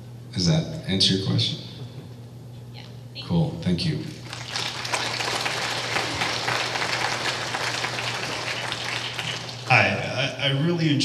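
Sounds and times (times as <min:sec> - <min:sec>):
audience applauding: 0:04.2 - 0:10.2.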